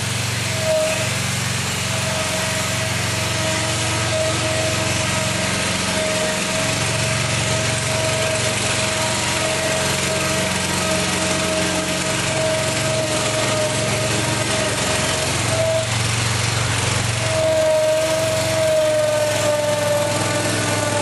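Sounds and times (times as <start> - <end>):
engine running steadily: 0.0 - 21.0
hydraulic drive whine: 0.0 - 21.0.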